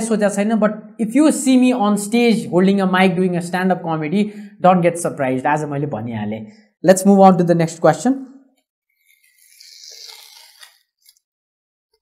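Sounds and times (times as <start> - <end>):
paper tearing: 9.1 - 11.3.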